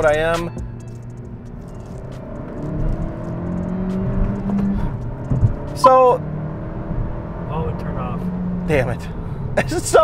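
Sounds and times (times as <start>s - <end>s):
car engine accelerating: 0.0s - 10.0s
low thump: 3.9s - 5.7s.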